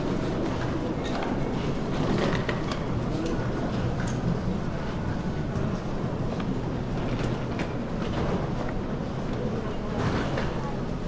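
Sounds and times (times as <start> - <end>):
airport terminal rumble: 0.0 - 11.0.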